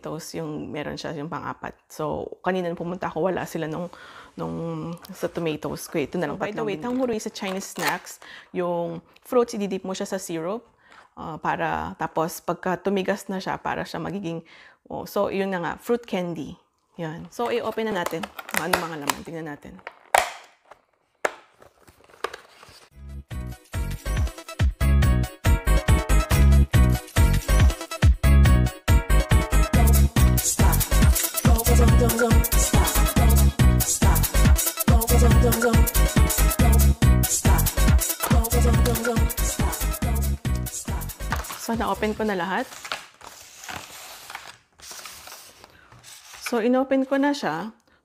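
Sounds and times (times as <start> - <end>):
plastic containers and cups rustling: 4.9 - 8.4, 17.2 - 22.9, 38.1 - 39.1, 41.1 - 47.3
plastic packaging snapping: 6.8 - 8.3, 17.6 - 22.9, 41.2 - 41.7
background music with steady beat: 23.0 - 41.9.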